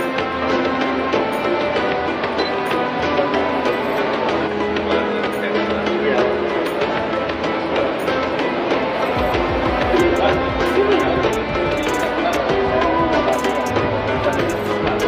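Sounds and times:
background music with beat: 0.0s - 15.0s
voices: 3.0s - 15.0s.

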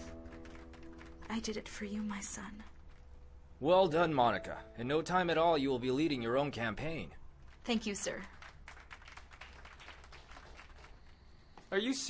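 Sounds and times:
light clapping: 8.2s - 11.2s.

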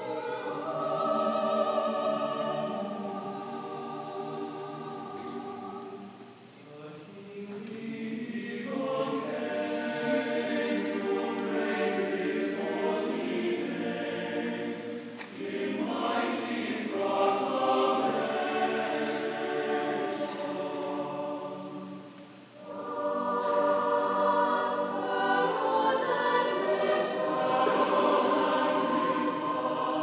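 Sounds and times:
mixed choir singing chords: 0.0s - 30.0s.

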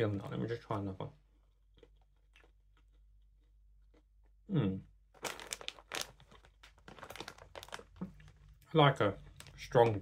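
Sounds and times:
faint crunching of chewing: 0.6s - 4.5s.

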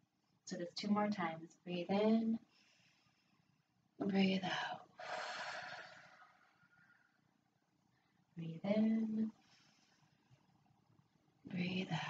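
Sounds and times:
woman exhaling: 5.0s - 6.8s.

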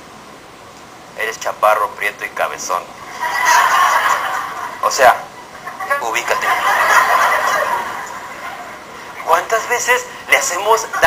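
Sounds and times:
women laughing: 3.0s - 9.3s.

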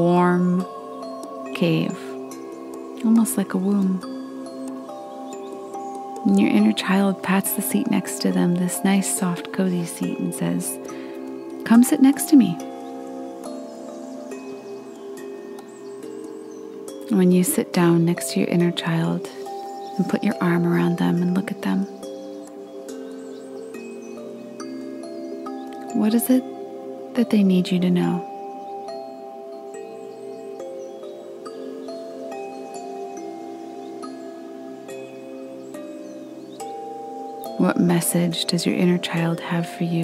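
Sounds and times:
ambient held tones: 0.0s - 40.0s
soft meditation music: 0.0s - 40.0s
wind chimes tinkling: 0.0s - 40.0s.

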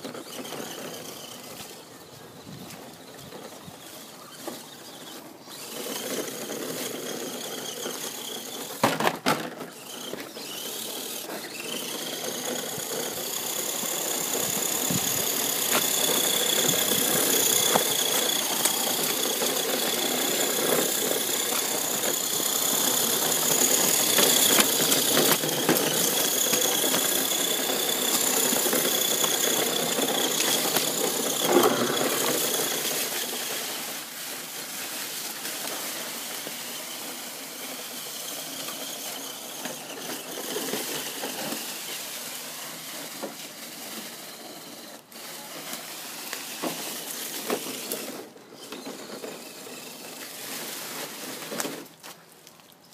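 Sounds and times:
electric motor whining: 0.0s - 51.8s
rough rolling noise: 0.0s - 52.8s.

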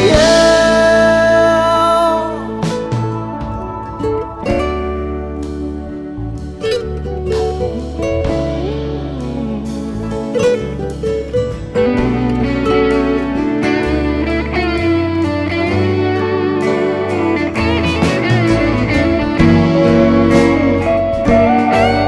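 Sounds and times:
bass and drums: 0.0s - 22.0s
lead guitar bending notes: 0.0s - 22.0s.

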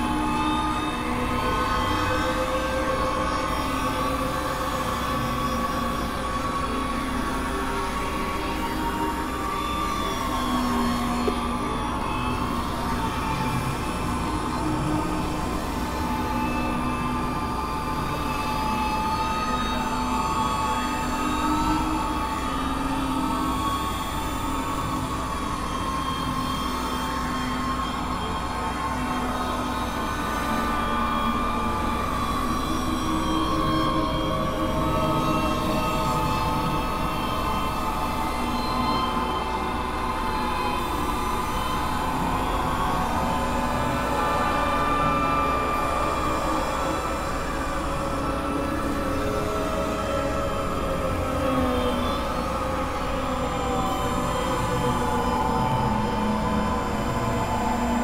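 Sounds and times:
experimental drone music: 0.0s - 58.0s.

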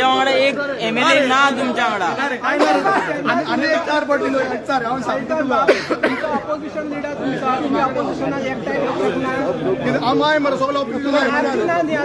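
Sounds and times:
men arguing over one another: 0.0s - 12.0s.

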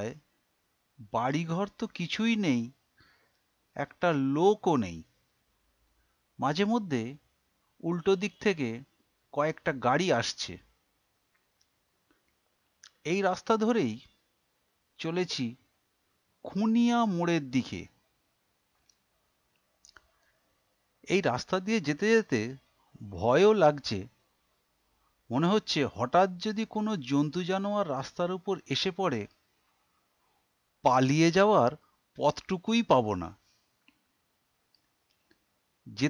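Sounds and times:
person speaking: 0.0s - 0.2s, 1.0s - 2.7s, 3.8s - 5.1s, 6.4s - 7.2s, 7.8s - 10.6s, 12.8s - 14.1s, 15.0s - 15.6s, 16.4s - 17.9s, 21.1s - 24.1s, 25.3s - 29.3s, 30.9s - 33.4s
man narrating: 1.0s - 2.7s, 3.8s - 5.0s, 6.4s - 7.2s, 7.8s - 8.8s, 9.4s - 10.6s, 12.9s - 14.0s, 15.0s - 15.6s, 16.5s - 17.9s, 21.1s - 24.1s, 25.3s - 29.3s, 30.9s - 33.3s
faint clicks: 18.7s - 20.4s, 34.7s - 35.5s.

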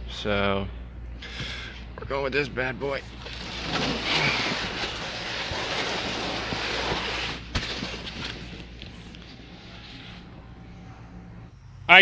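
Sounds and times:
cardboard box rustling scrape: 3.2s - 9.0s.

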